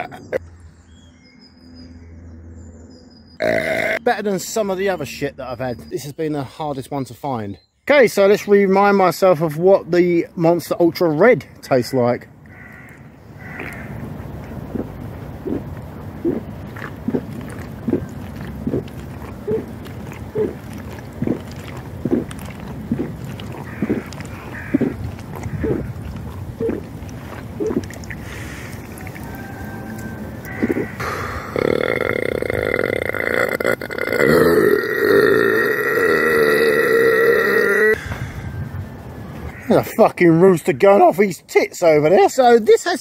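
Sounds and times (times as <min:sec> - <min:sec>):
man gulping drink: 0:13.6 - 0:38.3.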